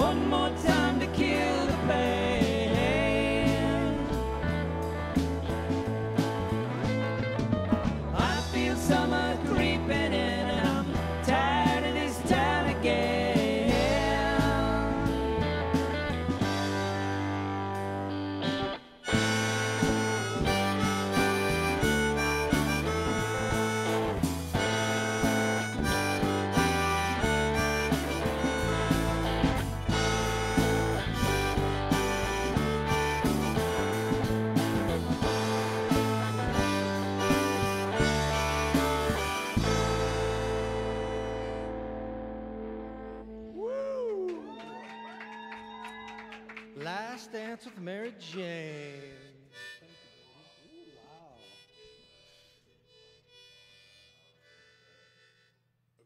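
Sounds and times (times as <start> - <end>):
harmonica lead: 0.0 - 43.7, 48.5 - 56.0
live band music: 0.0 - 45.0.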